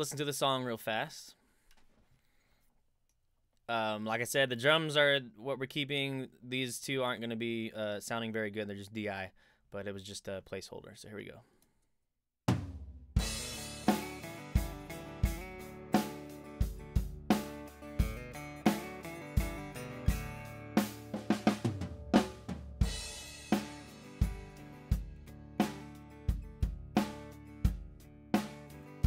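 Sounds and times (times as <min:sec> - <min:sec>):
drum kit steady beat: 0:12.5 - 0:29.0
acoustic guitar chords and riff: 0:13.2 - 0:29.0.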